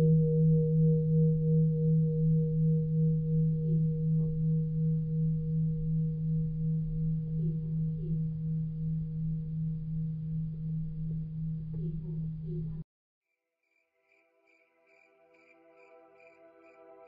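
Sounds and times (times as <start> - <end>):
low wavering ringing tone: 0.0 - 12.4.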